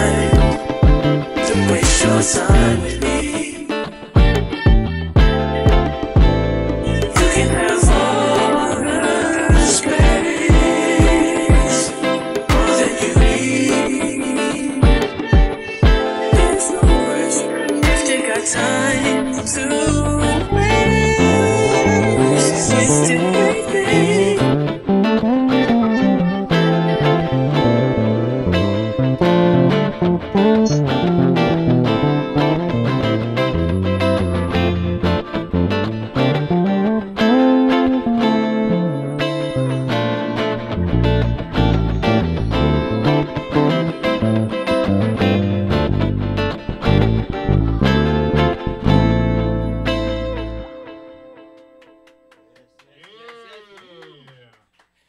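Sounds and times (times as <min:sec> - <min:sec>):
soul-funk backing track with drums: 0:00.0 - 0:03.4, 0:04.2 - 0:36.7
electric bass guitar: 0:00.0 - 0:51.8.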